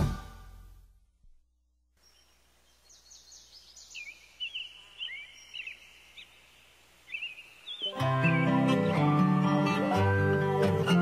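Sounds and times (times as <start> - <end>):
birds chirping: 2.0 - 9.9
low steady hiss: 2.0 - 10.9.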